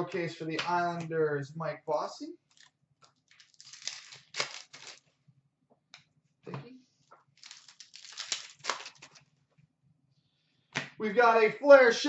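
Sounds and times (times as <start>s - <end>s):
soft rustle of cards: 2.5s - 5.2s, 7.0s - 9.4s.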